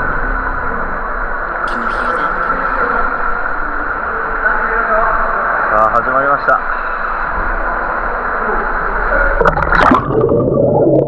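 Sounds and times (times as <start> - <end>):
indistinct voices: 1.6 - 4.0
echoing swimming pool hall noise: 1.6 - 9.4.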